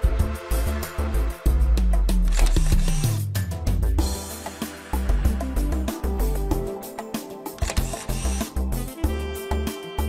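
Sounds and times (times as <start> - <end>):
background music with drum beat: 0.0 - 10.0
camera shutter click and whir: 2.3 - 3.2, 7.6 - 8.6.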